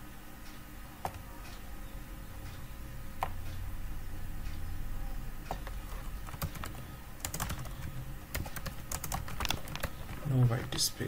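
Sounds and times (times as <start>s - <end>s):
typing on computer keyboard: 5.5s - 10.3s.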